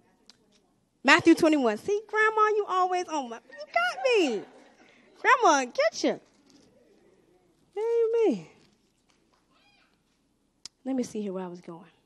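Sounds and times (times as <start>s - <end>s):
woman speaking amplified: 1.1s - 4.6s, 5.2s - 6.2s.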